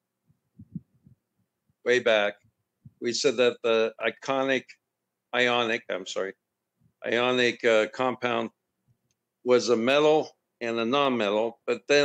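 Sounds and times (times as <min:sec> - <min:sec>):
person talking: 0:01.9 - 0:02.4.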